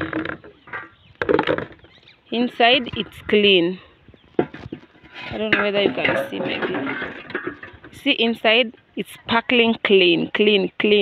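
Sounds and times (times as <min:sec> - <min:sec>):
metal pots knocking and clattering: 0:04.4 - 0:08.0.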